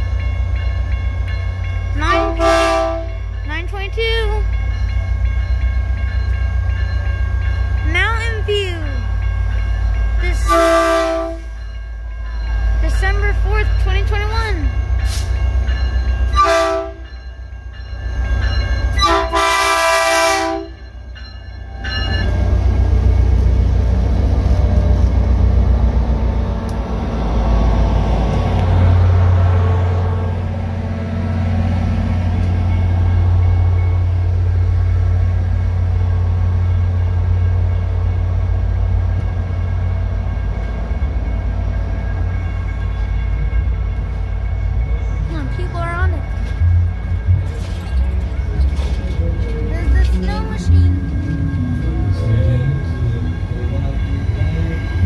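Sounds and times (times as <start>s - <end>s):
train rumbling past: 0.0s - 55.0s
locomotive horn blasts: 2.1s - 3.2s, 10.4s - 11.5s, 16.3s - 17.1s, 19.0s - 20.8s.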